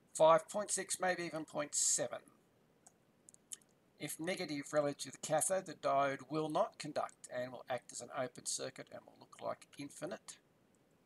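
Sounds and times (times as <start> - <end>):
person speaking: 0.2 - 2.3, 3.4 - 10.4.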